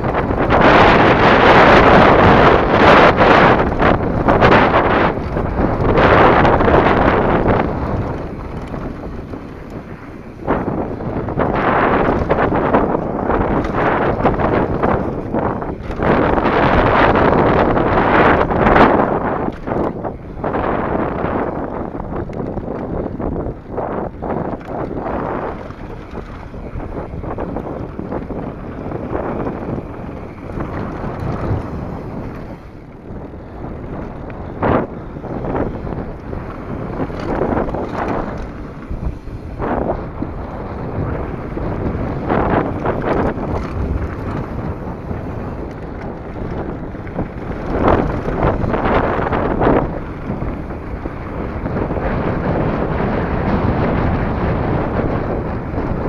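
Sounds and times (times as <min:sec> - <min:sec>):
bike rattling over bumps: 0:00.0 - 0:56.0
bike tyres on dirt: 0:00.0 - 0:56.0
wind rushing over microphone: 0:00.0 - 0:56.0.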